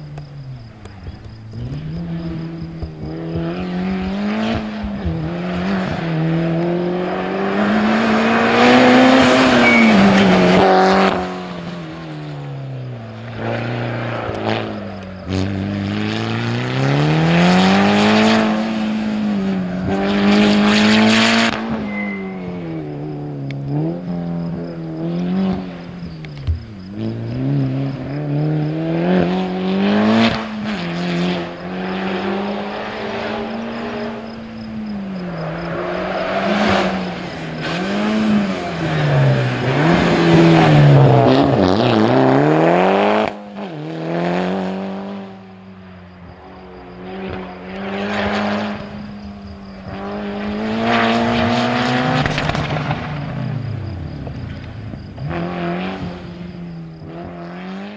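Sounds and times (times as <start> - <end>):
rally car engine revving: 0.0 - 57.9.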